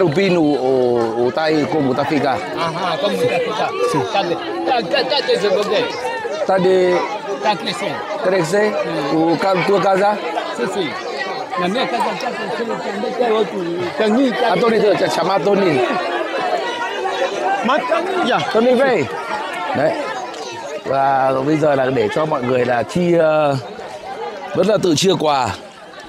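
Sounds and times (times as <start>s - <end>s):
men talking at once: 0.0s - 25.9s.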